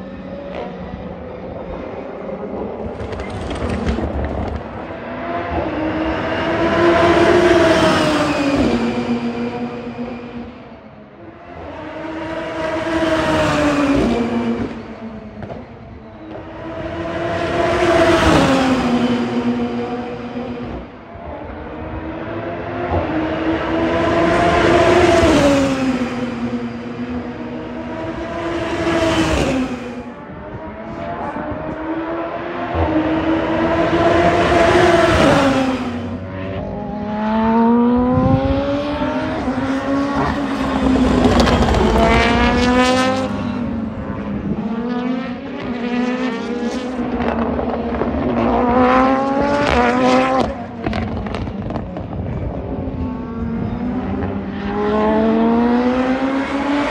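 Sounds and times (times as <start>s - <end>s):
race cars passing: 0.0s - 56.9s.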